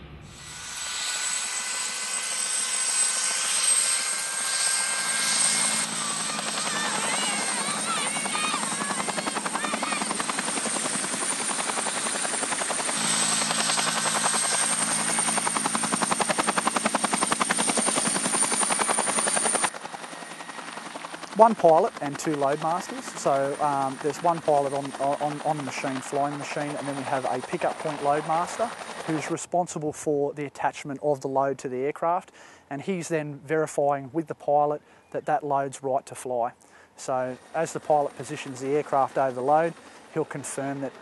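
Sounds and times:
helicopter turbine whine: 0.0 - 29.5, 36.6 - 41.0
rapid rotor blade beat: 4.0 - 19.9.

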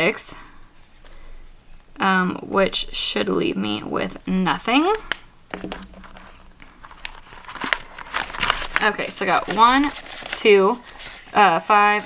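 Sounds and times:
plastic binder pocket crinkling: 5.0 - 12.0
banknotes rustling: 5.5 - 12.0.

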